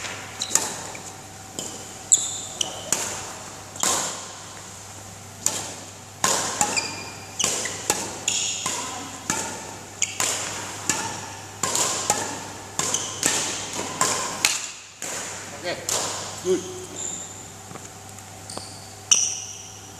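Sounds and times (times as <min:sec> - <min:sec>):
shoe squeaks on court floor: 0:00.0 - 0:03.0, 0:06.6 - 0:08.6, 0:10.0 - 0:10.2, 0:12.9 - 0:13.2, 0:16.4 - 0:17.5, 0:18.4 - 0:19.9
racket hitting shuttlecock: 0:00.0 - 0:04.7, 0:05.3 - 0:17.4.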